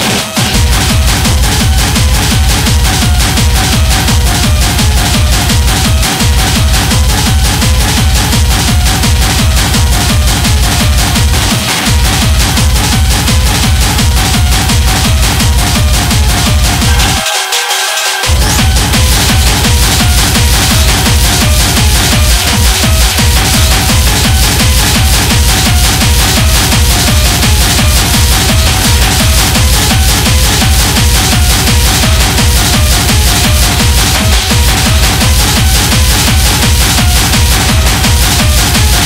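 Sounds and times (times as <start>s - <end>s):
hard techno track: 0.0s - 39.0s.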